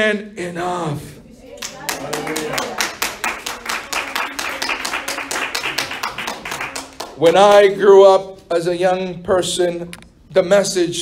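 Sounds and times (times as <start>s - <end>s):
hands clapping rhythmically: 1.6s - 7.9s.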